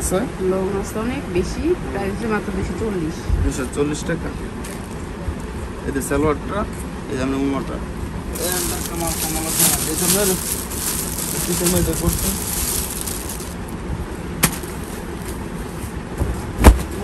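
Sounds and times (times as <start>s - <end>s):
cloth and plastic rustling: 8.4s - 13.6s.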